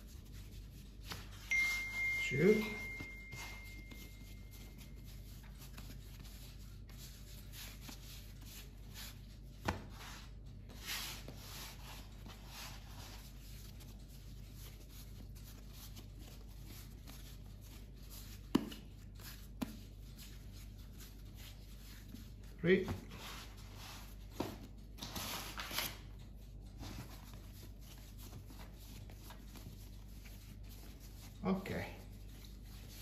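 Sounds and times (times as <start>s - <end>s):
dough rubbing on wood: 0.0s - 1.4s, 2.3s - 24.8s, 26.3s - 33.0s.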